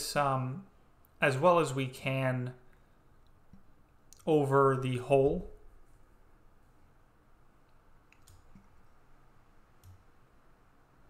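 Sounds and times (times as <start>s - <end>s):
computer mouse clicks: 7.7s - 8.8s, 9.8s - 10.1s.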